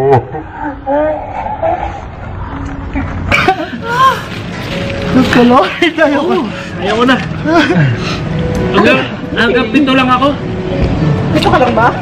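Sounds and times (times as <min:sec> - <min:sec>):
men laughing hard: 0:03.2 - 0:04.5.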